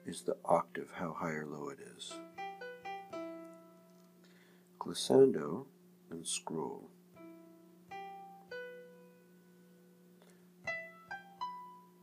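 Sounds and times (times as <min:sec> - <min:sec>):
piano notes: 0:00.0 - 0:00.5, 0:02.0 - 0:04.3, 0:07.1 - 0:12.0
faint steady hum: 0:00.0 - 0:12.0.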